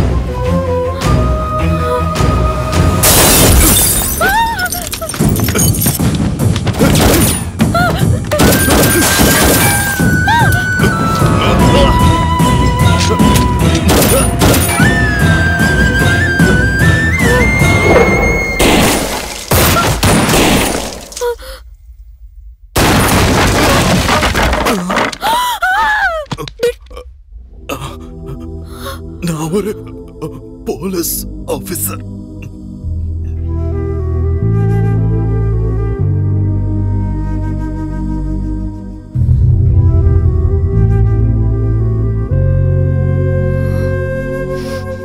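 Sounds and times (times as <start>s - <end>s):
dramatic background music: 0.0s - 19.5s, 27.6s - 45.0s
glass shattering: 3.0s - 6.1s, 8.4s - 10.1s, 18.6s - 21.3s.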